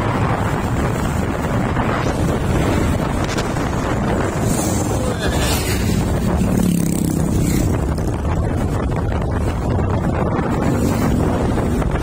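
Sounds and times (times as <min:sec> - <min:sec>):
vehicle road rumble: 0:00.0 - 0:12.0
wind rushing over microphone: 0:00.0 - 0:12.0
motorcycle engine passing: 0:04.4 - 0:08.2.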